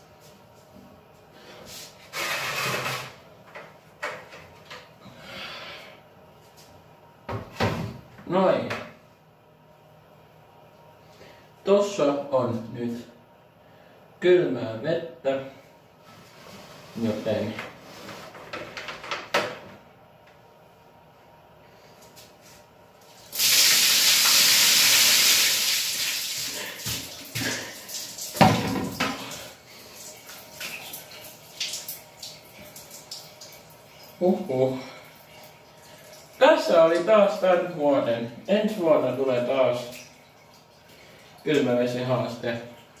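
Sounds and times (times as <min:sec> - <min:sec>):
bucket knocks: 0:28.4 - 0:29.2.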